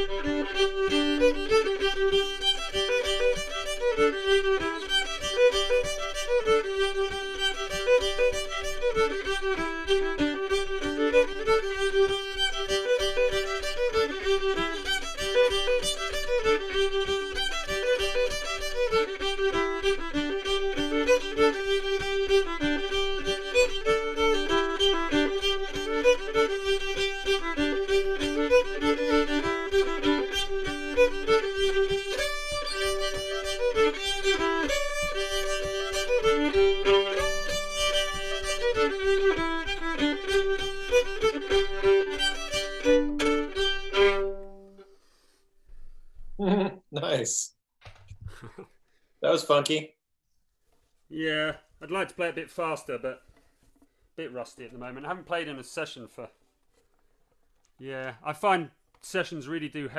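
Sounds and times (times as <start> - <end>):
bowed fiddle tune with drone: 0.0 - 45.2.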